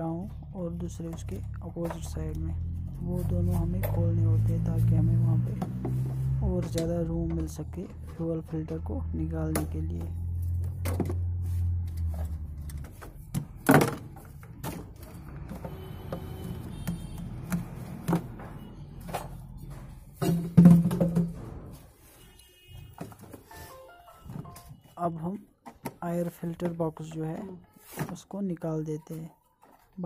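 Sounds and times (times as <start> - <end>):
person's voice: 0.0 - 5.8, 6.4 - 10.2, 25.0 - 30.0
music: 23.5 - 24.7.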